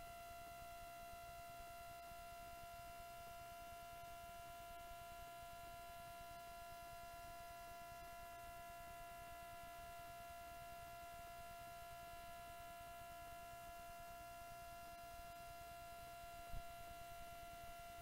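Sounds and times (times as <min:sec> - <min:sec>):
faint electrical whine: 0:00.0 - 0:18.0.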